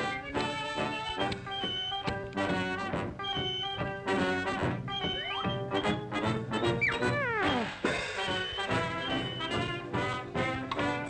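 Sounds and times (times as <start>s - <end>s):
brass band music: 0.0s - 11.0s
downward sliding tone: 6.9s - 7.9s.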